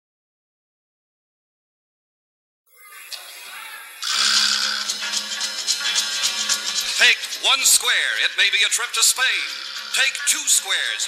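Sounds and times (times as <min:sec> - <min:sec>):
thin high tone: 0:02.7 - 0:07.5.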